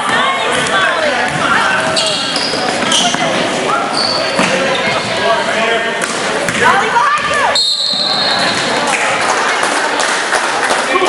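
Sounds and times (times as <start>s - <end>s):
sneakers squeaking: 0.0s - 5.5s, 6.4s - 8.9s
basketball bouncing on court: 6.0s - 8.7s.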